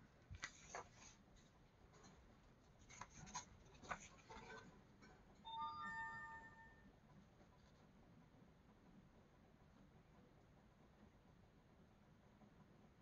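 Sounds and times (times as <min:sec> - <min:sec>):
paper rustling: 0:00.2 - 0:04.8
book pages turning clicks: 0:00.3 - 0:01.2, 0:02.8 - 0:04.6
soft chime of held tones: 0:05.4 - 0:06.9.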